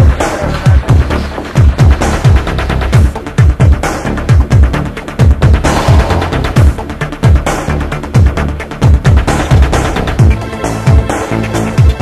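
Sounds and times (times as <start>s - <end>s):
heavy kick drum: 0.0s - 11.0s
dense synth layers: 5.2s - 7.4s
fast high percussion: 5.4s - 7.4s.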